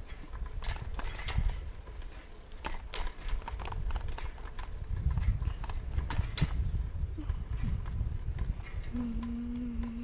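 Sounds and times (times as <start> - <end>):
bicycle tyres rumbling on concrete: 0.0 - 10.0
sharp rattling clicks: 0.1 - 6.6.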